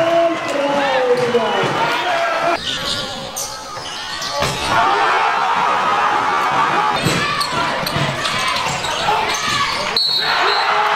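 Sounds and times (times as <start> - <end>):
crowd noise: 0.0 - 10.9
voices shouting: 0.8 - 10.9
basketball bouncing on court: 6.6 - 9.8.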